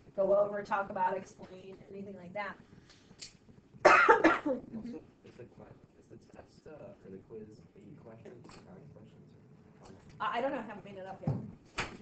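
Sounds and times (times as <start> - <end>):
person coughing harshly: 3.8 - 5.0.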